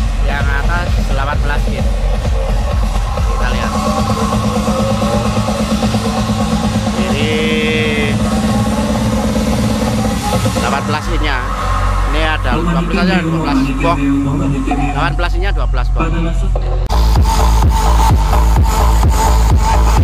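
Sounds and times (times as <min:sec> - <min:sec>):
electronic dance music with pulsing bass: 0:00.0 - 0:20.0
voices: 0:06.9 - 0:08.9, 0:10.1 - 0:16.6.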